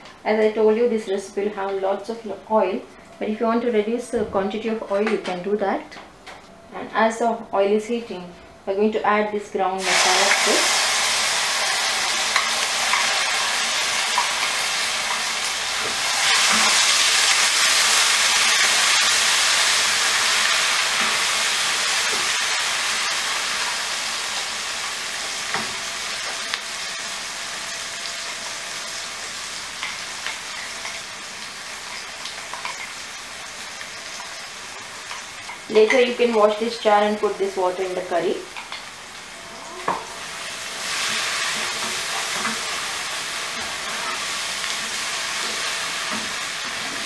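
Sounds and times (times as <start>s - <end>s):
paste sizzling in hot oil: 9.8s - 35.7s.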